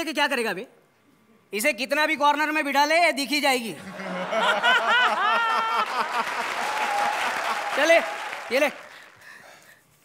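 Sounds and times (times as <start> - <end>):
audience applauding: 4.4 - 9.6.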